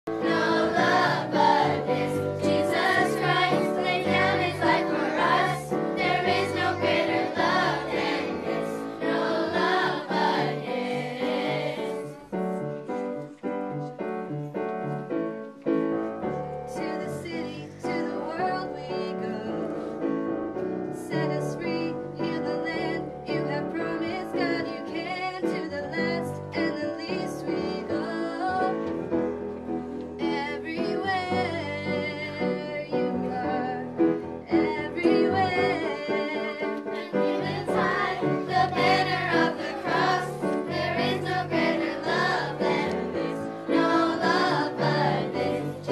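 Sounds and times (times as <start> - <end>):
children and girls singing: 0.1 - 12.4, 34.5 - 45.9.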